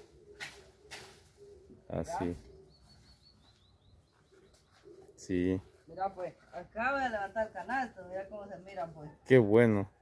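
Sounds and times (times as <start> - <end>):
bird chirping: 0.0 - 7.0.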